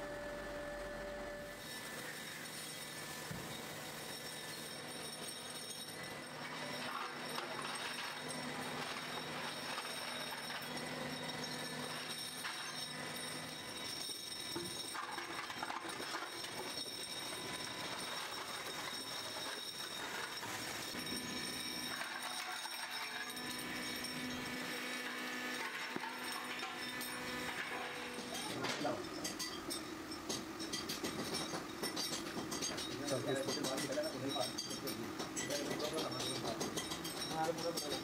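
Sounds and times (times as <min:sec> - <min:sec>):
steady machinery hum: 0:00.0 - 0:38.0
metal castings clinking together: 0:25.9 - 0:38.0.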